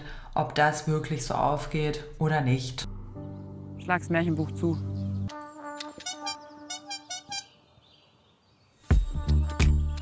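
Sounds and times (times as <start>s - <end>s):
short honking horn toots: 5.9s - 7.6s.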